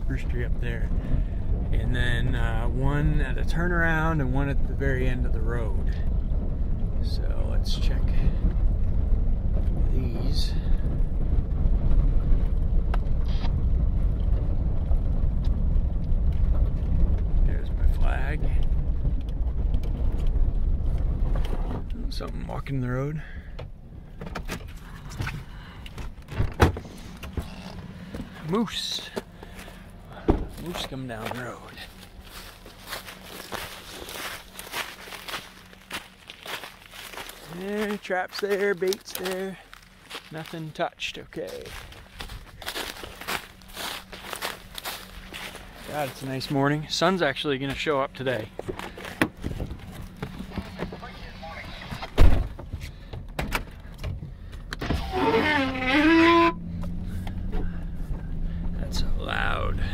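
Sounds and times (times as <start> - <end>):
pickup truck running: 0.0 - 59.9
heavy thump: 30.2 - 30.8, 52.0 - 54.3.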